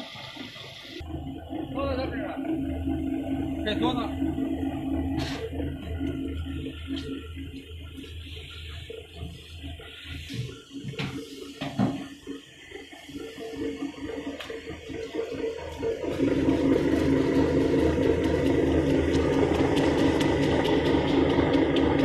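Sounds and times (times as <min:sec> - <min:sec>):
electric motor hum: 0:00.0 - 0:22.0
water churning in a tank: 0:00.0 - 0:22.0.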